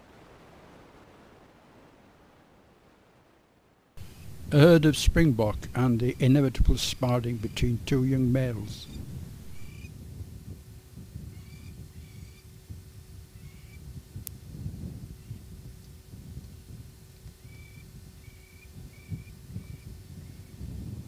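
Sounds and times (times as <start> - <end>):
low rumble: 4.0 - 9.8.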